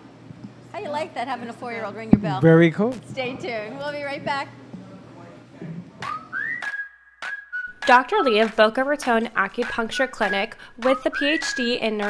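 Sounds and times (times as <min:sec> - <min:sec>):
low room noise: 0:00.0 - 0:06.6
rising whistled note: 0:06.0 - 0:07.9.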